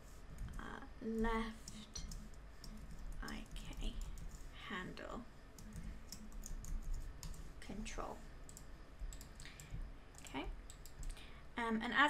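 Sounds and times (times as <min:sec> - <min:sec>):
keyboard typing clicks: 0:01.6 - 0:04.4, 0:05.6 - 0:07.5, 0:08.4 - 0:11.2.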